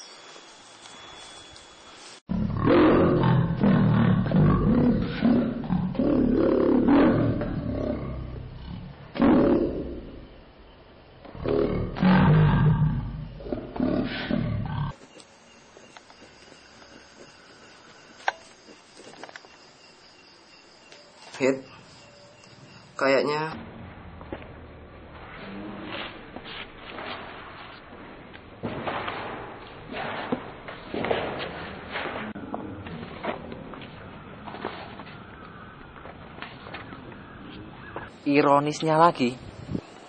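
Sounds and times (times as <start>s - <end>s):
roaring growling vocal sounds: 2.3s - 10.2s, 11.4s - 15.0s.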